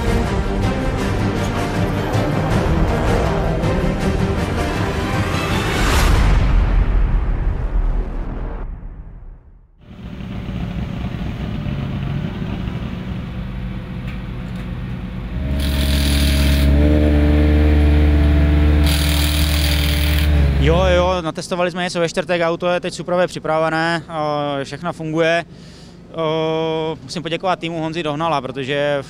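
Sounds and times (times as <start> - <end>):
theme music: 0.0 - 9.5, 15.3 - 21.3
rally car engine idling: 9.9 - 16.2
short bursts of hiss: 15.5 - 16.7.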